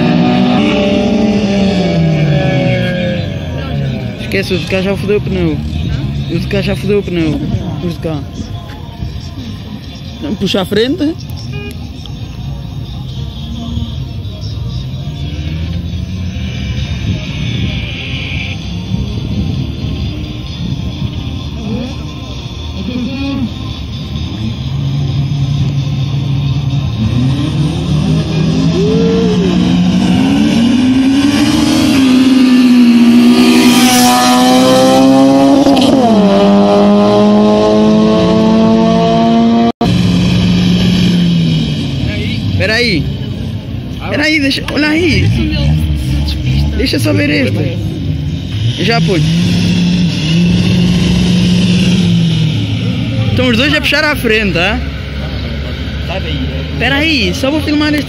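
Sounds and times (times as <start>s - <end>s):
car engine revving: 0.0s - 8.5s, 10.2s - 58.0s.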